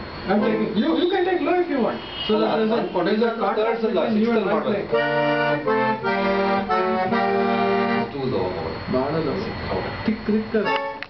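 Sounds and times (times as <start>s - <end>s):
accordion chords: 0.3s - 0.9s, 2.3s - 8.9s, 10.1s - 11.0s.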